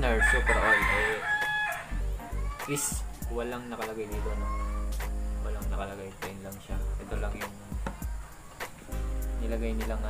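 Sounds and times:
rooster crowing: 0.0s - 2.0s.

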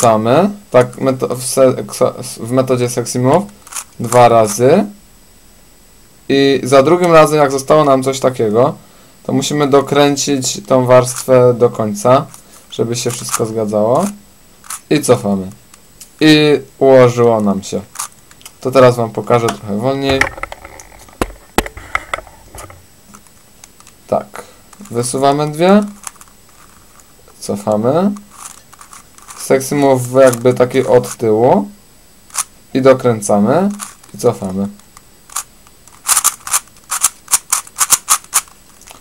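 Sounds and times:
puzzle cube layers clicking: 3.4s - 4.6s, 12.2s - 16.1s, 17.4s - 24.0s, 24.7s - 31.3s, 32.3s - 32.5s, 33.6s - 39.0s
plastic cube clicking on tabletop: 35.3s - 39.0s.

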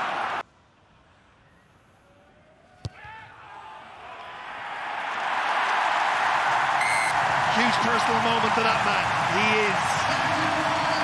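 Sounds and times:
crowd cheering: 0.0s - 0.4s, 3.0s - 11.0s
stadium crowd noise: 0.0s - 0.4s, 1.0s - 11.0s.

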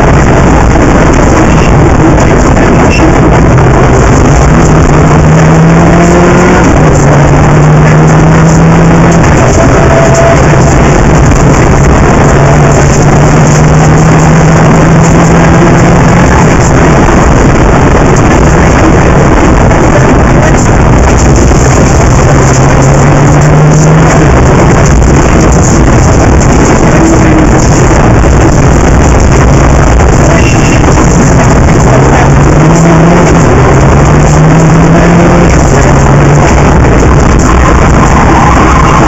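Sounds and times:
rally car engine running hard: 0.0s - 39.0s
road noise: 0.0s - 39.0s
wind noise: 0.0s - 39.0s.

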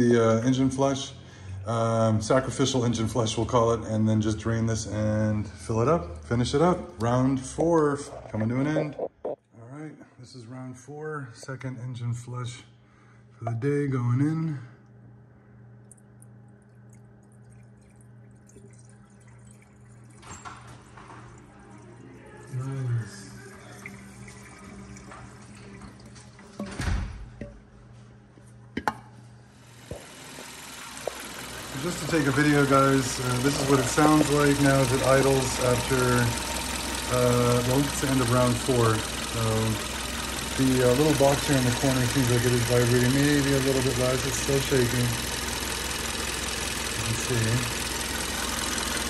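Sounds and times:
liquid glugging from a can: 15.9s - 21.8s
car engine idling: 29.7s - 49.0s
fuel injectors ticking: 29.8s - 49.0s.

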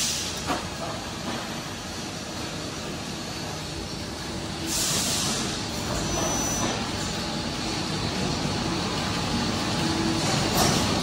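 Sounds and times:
injection moulding machine running: 0.1s - 11.0s.

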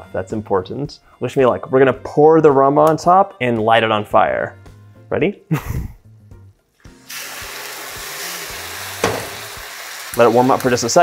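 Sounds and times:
liquid sizzling in a hot pan: 6.9s - 11.0s.

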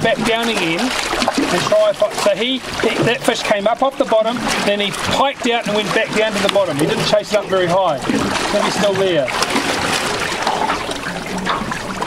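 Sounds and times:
water lapping against boat hull: 0.0s - 12.0s.

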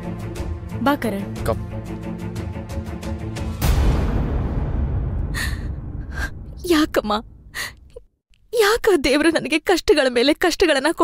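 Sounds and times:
low rumble: 3.8s - 7.8s.

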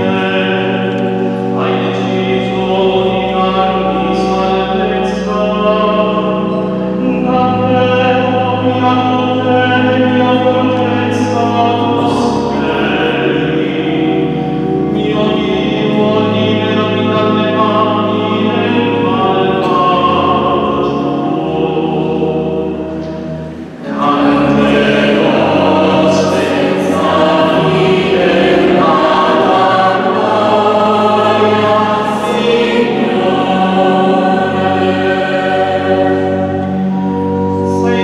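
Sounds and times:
mixed choir singing: 0.0s - 4.8s, 15.0s - 38.0s.

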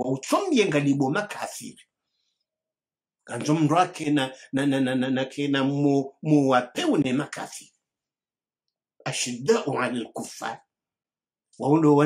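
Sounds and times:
man speaking: 0.0s - 1.8s, 3.3s - 7.7s, 9.0s - 10.6s, 11.6s - 12.0s.

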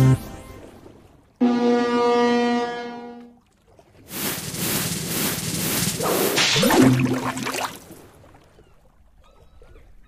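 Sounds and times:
watery whoosh: 4.0s - 8.4s.

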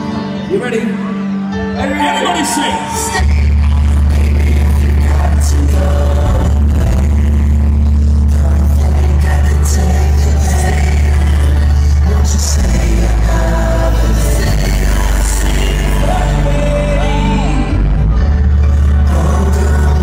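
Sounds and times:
live pop band music: 0.0s - 20.0s
voices singing: 8.3s - 18.0s.

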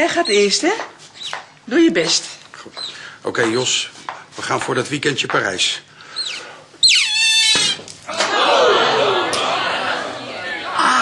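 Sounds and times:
guinea pig squeaking: 0.0s - 0.6s, 6.2s - 7.8s
guinea pig shrieking: 6.2s - 7.8s.

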